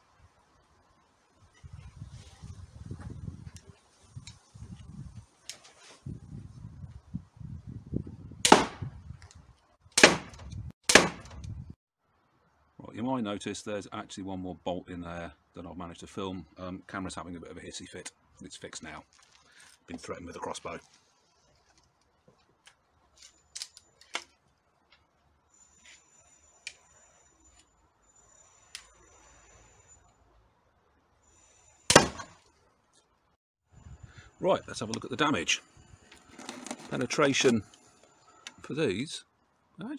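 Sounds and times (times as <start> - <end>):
crossbow shots cracking: 8.4 - 8.9, 10.0 - 11.4, 31.9 - 32.4.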